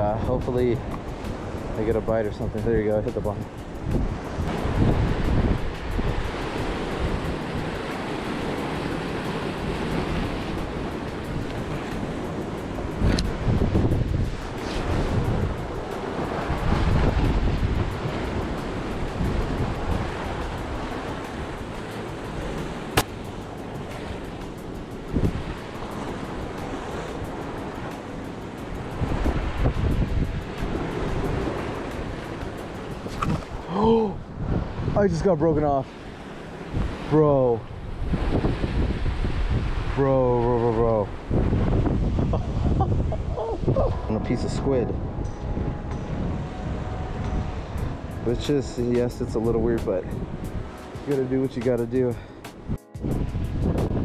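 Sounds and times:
wind buffeting microphone: 0.0s - 54.0s.

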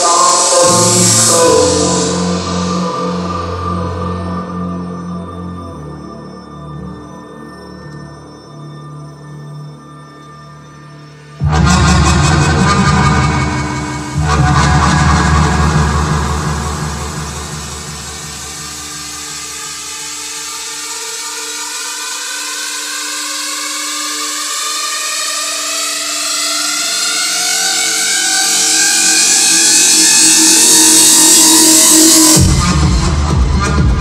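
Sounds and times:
rising noise sweep: 0.0s - 4.0s, 11.4s - 19.7s
held synth pad: 0.0s - 8.1s, 10.6s - 20.4s
kick drum and bass: 11.4s - 20.0s, 32.4s - 34.0s.

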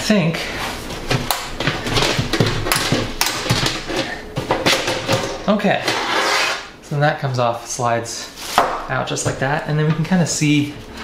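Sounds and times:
metal knocks clicks and scrapes: 1.0s - 6.2s.

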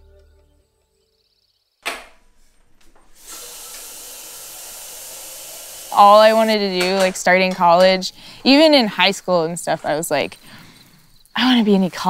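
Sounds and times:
background music: 0.0s - 1.3s
tap water running into kettle: 3.2s - 8.1s.

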